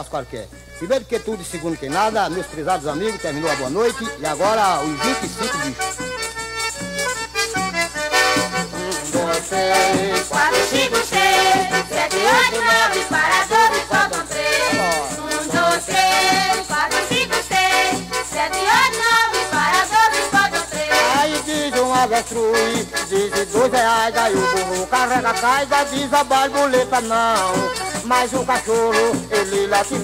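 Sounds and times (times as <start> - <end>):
accordion melody: 0.0 - 30.0
steady percussion beat: 1.9 - 30.0.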